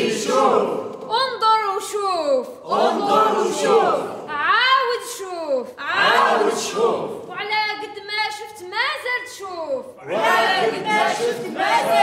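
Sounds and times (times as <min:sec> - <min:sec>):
voices declaiming in unison: 0:00.0 - 0:12.0.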